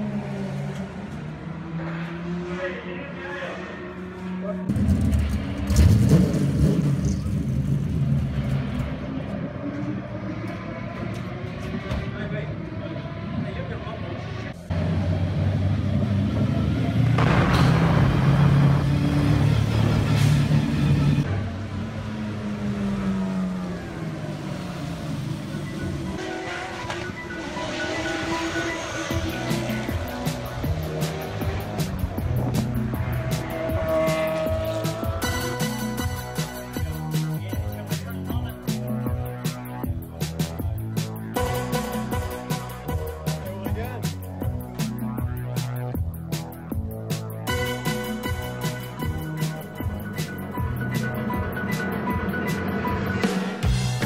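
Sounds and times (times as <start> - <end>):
racing car engine revving: 0.0 - 54.0
background music: 25.6 - 54.0.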